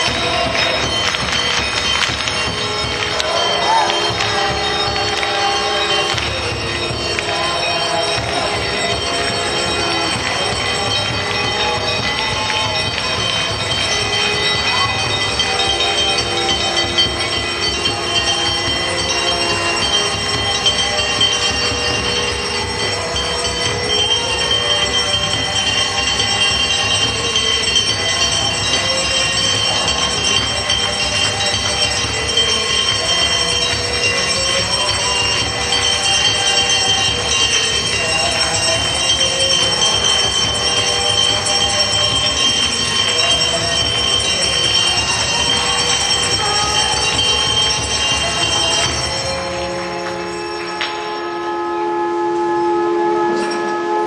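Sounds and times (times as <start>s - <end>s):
temple bells ringing: 0.0s - 54.0s.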